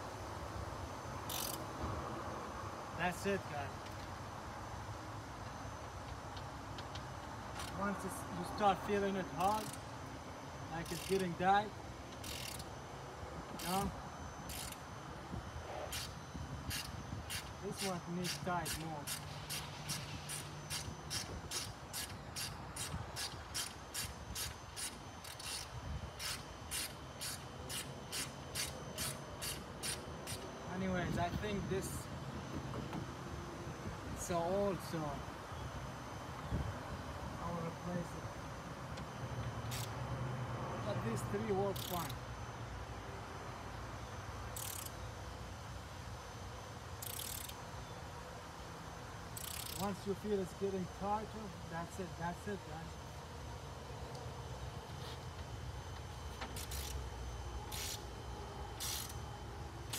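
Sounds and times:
insect calling in buzzy bursts: 0:00.0 - 0:59.9.

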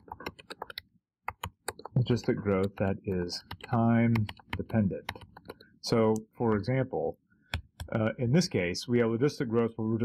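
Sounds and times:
keyboard typing clicks: 0:00.0 - 0:06.6.

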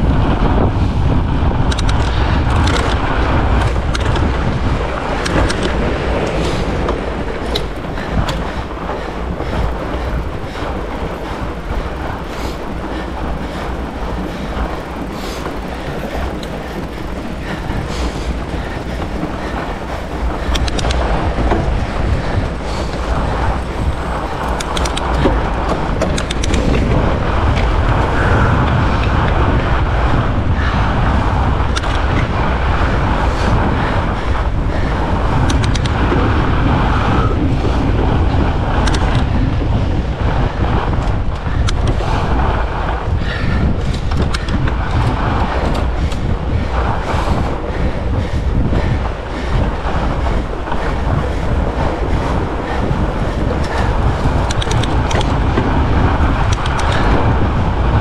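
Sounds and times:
bike rattles and clicks: 0:00.0 - 0:58.0
bike tyre and drivetrain noise: 0:00.0 - 0:58.0
wind on microphone: 0:00.0 - 0:58.0.

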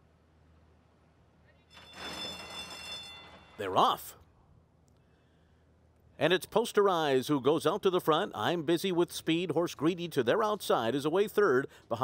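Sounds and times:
faint low hum: 0:00.0 - 0:12.0
starting gate bell ringing: 0:01.7 - 0:04.1.

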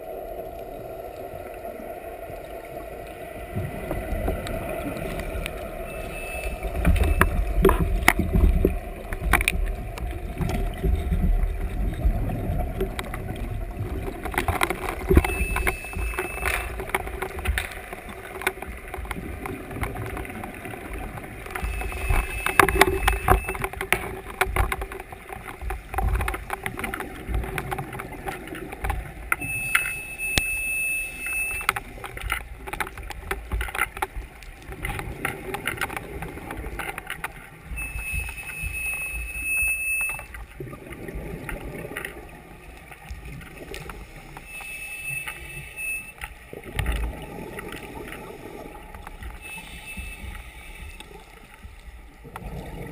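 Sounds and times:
underwater rush of water: 0:00.0 - 0:52.9
sharp clicks and crackles: 0:00.3 - 0:52.9
electronic alarm beep: 0:05.9 - 0:07.6, 0:15.1 - 0:16.8, 0:21.6 - 0:23.7, 0:29.4 - 0:31.8, 0:37.7 - 0:40.4, 0:44.4 - 0:46.2, 0:49.4 - 0:51.2.

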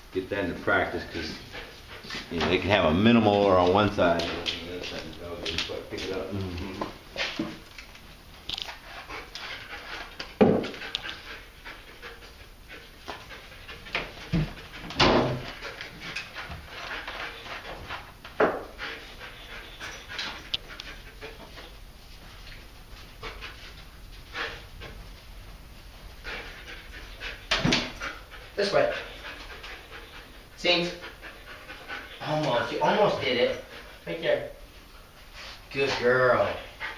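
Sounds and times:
dog panting and sniffing: 0:00.7 - 0:36.9.

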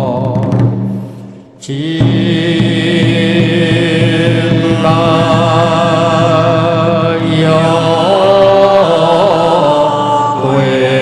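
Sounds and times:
devotional chant with accompaniment: 0:00.0 - 0:11.0.

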